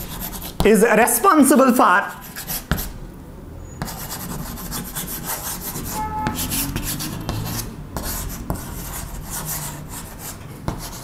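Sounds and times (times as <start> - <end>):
chalk scratching on chalkboard: 0.0 - 0.7, 2.1 - 3.0, 3.8 - 11.0.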